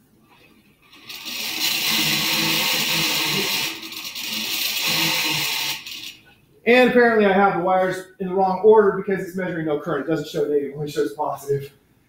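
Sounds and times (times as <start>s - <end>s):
electric motor whirring buzz: 1.0s - 6.2s.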